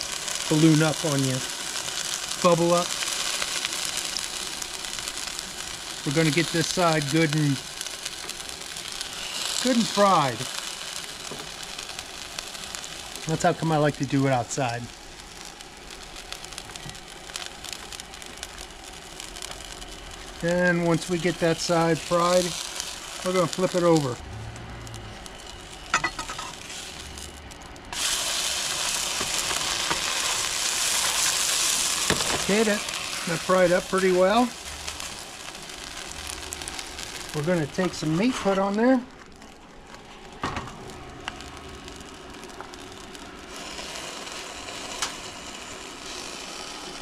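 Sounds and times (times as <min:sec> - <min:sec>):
oil crackling: 0:00.0 - 0:47.0
tortilla sizzling in oil: 0:00.0 - 0:47.0
oil spattering pops: 0:32.0 - 0:32.5.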